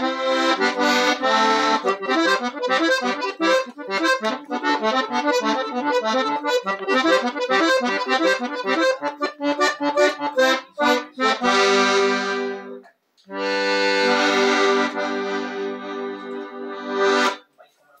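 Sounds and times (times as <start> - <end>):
accordion playing: 0.0 - 17.4.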